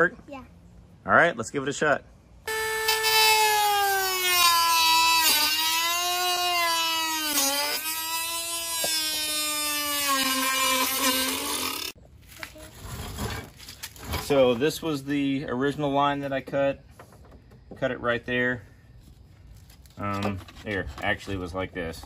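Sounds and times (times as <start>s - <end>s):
power tool cutting plastic: 2.5s - 12.0s.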